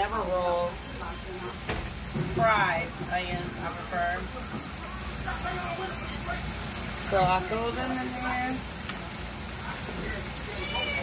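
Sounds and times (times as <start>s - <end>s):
meat sizzling in a frying pan: 0.0s - 11.0s
quiet talking: 0.0s - 11.0s.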